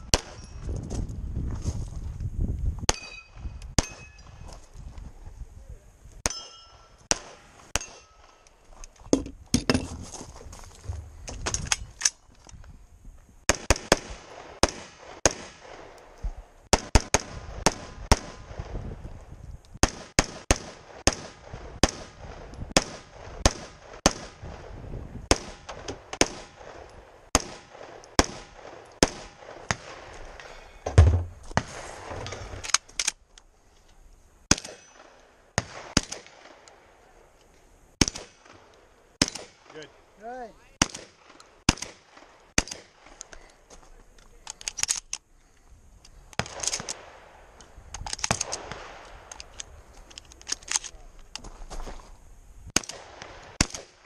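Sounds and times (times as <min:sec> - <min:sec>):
rifle shots: 0:00.0 - 0:00.4, 0:06.2 - 0:08.4, 0:13.5 - 0:16.0, 0:16.7 - 0:18.8, 0:19.8 - 0:24.6, 0:25.2 - 0:30.2, 0:34.5 - 0:36.7, 0:38.0 - 0:39.9, 0:40.8 - 0:43.2, 0:52.8 - 0:54.0
shotgun shots: 0:06.2 - 0:08.4, 0:13.5 - 0:15.9, 0:16.7 - 0:18.8, 0:19.8 - 0:24.6, 0:25.2 - 0:30.1, 0:34.5 - 0:36.7, 0:38.0 - 0:39.9, 0:40.8 - 0:43.2, 0:52.8 - 0:54.0
heavy low thump: 0:10.8 - 0:11.5, 0:30.8 - 0:32.3.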